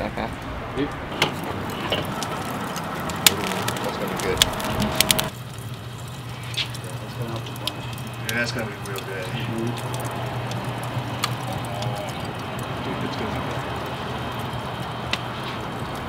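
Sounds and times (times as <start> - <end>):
charcoal fire crackling and popping: 0.0 - 16.0
steady hiss: 0.0 - 16.0.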